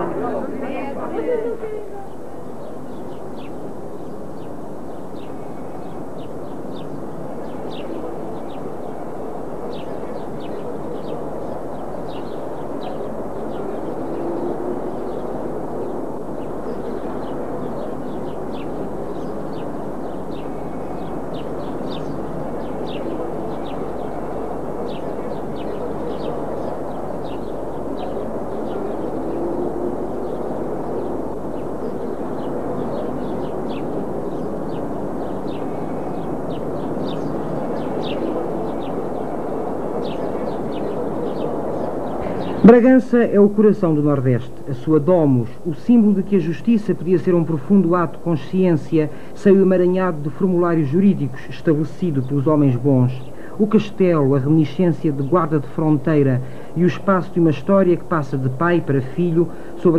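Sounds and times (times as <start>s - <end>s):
small birds chirping: 0.0s - 59.9s
steady rushing noise: 0.0s - 59.9s.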